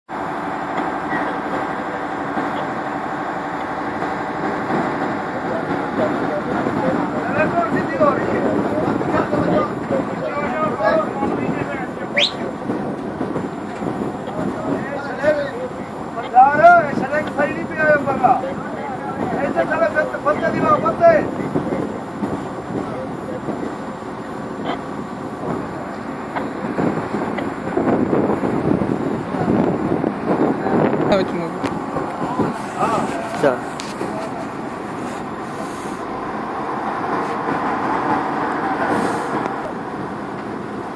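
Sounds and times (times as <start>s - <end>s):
diesel crane engine running: 0.1s - 40.9s
voices talking: 0.2s - 40.9s.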